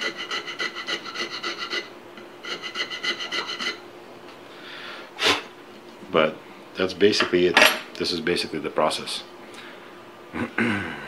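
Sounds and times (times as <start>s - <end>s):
rasp filing wood: 0.0s - 3.8s.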